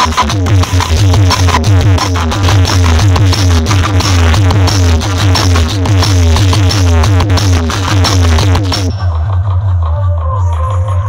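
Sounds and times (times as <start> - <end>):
heavy pulsing bass: 0.0 - 11.0
loud dance music: 0.0 - 11.0.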